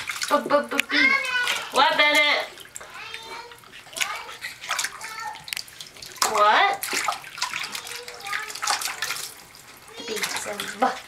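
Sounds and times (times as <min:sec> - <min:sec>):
bathwater splashing and dripping: 0:00.0 - 0:11.0.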